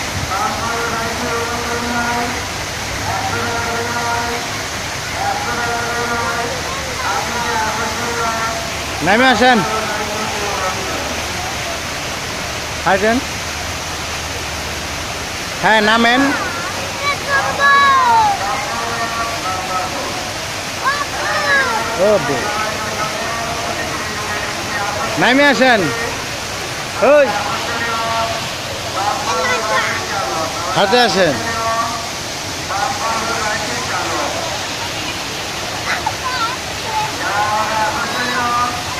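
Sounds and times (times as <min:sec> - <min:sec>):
fountain water splashing: 0:00.0 - 0:38.9
voices calling out: 0:00.0 - 0:38.9.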